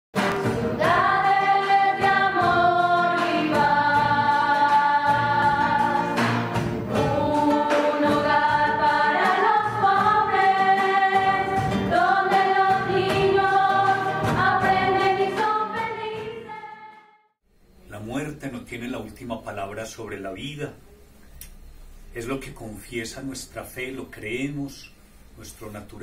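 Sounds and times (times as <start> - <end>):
choir singing held notes: 0.2 - 17.2.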